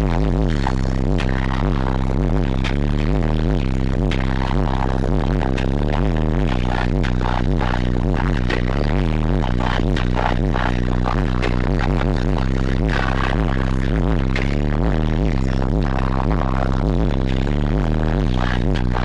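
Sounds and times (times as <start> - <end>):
bass-heavy electronic music: 0.0 - 19.0.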